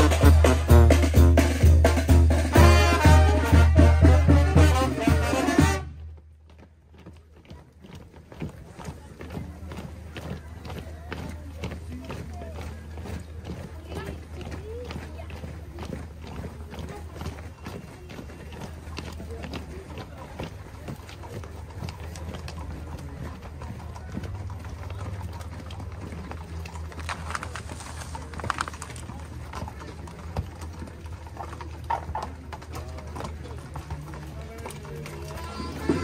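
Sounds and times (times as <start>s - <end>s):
horse hooves clip-clopping: 0.0s - 36.0s
people's voices: 0.0s - 36.0s.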